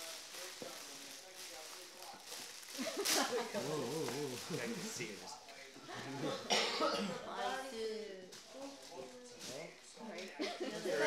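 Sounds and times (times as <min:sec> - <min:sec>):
person coughing: 0:06.2 - 0:07.2.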